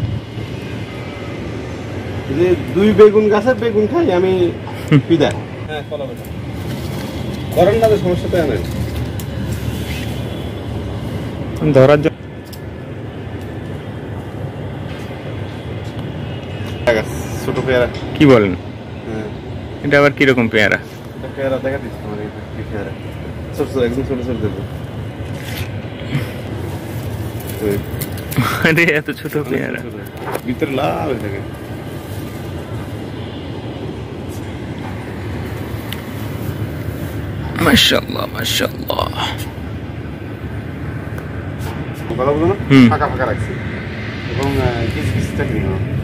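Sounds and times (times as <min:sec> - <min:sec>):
low rumbling background noise: 0:00.0 - 0:46.0
person speaking: 0:37.5 - 0:39.6.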